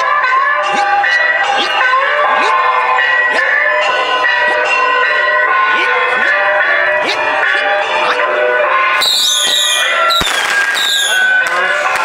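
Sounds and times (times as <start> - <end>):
shrill wind instrument notes: 0.0 - 11.9
voices: 0.6 - 8.8, 10.8 - 12.0.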